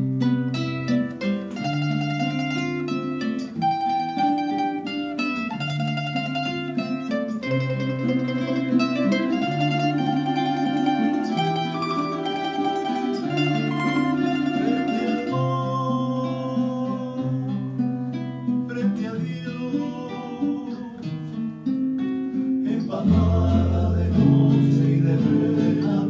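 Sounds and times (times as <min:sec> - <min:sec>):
plucked string ensemble playing bolero: 0:00.0 - 0:26.0.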